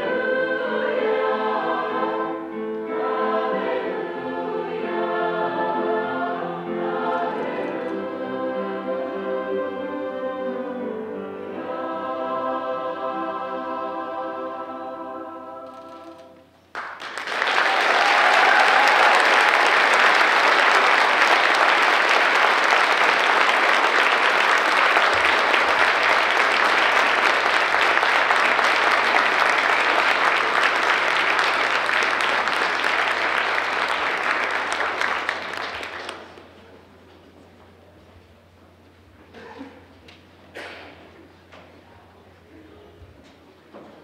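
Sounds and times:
audience applauding: 16.7 - 36.6.

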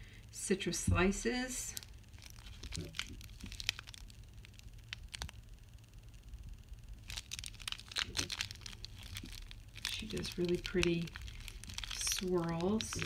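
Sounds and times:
plastic wrap crinkling: 1.6 - 5.6, 7.0 - 13.0.

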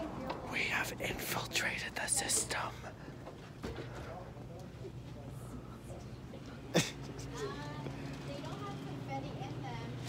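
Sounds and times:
person whispering: 0.5 - 3.0.

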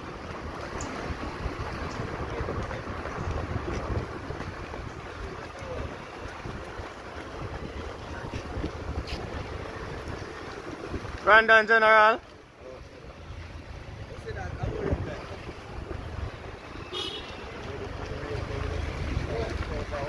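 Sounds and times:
wind buffeting microphone: 0.0 - 11.3, 13.6 - 20.0
vehicle and tyres rumbling: 0.0 - 20.0.

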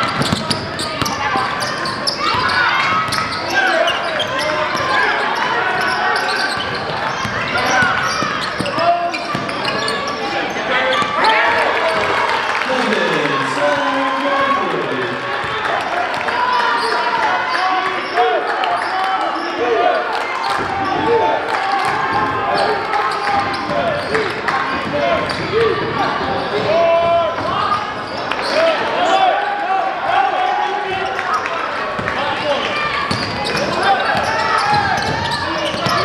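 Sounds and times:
echoing crowd and player voices: 0.0 - 36.0.

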